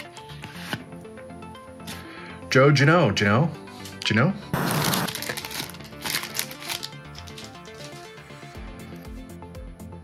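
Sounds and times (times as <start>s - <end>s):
trading cards being shuffled: 0.0s - 0.8s, 3.8s - 8.2s
soft background music: 0.0s - 10.0s.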